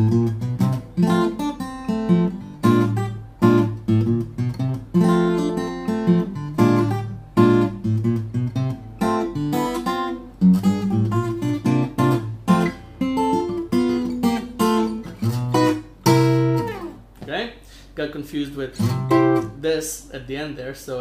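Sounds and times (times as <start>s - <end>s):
fingerstyle acoustic guitar: 0.0s - 17.2s, 18.8s - 19.6s.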